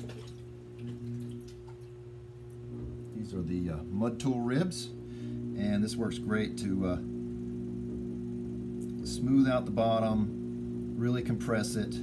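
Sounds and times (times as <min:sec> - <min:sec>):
potter's wheel motor hum: 0:00.0 - 0:12.0.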